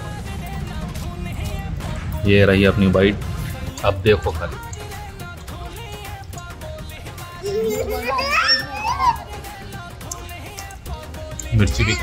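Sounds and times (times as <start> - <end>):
background music: 0.0 - 12.0
children calling and chattering: 5.8 - 12.0.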